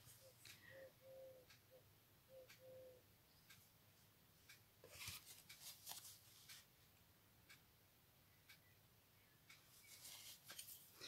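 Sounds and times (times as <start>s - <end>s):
faint ticking: 0.0s - 11.0s.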